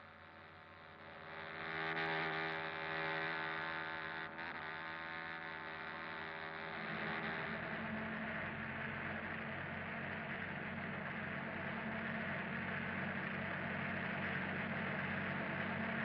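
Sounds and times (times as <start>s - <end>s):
car driving droning hum: 0.0s - 16.0s.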